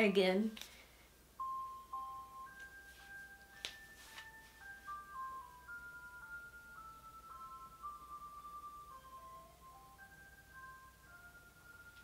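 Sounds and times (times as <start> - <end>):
ice cream truck chime jingle: 1.4 - 12.0.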